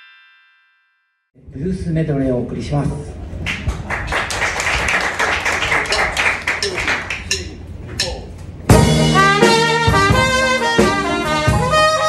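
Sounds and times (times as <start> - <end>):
audience applauding: 3.4 - 7.4.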